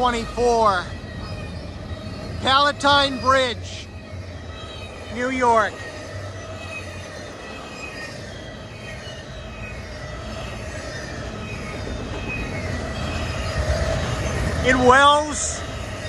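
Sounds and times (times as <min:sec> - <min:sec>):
faint high steady tones: 0:00.0 - 0:16.0
freight train wheels on rails: 0:00.0 - 0:16.0.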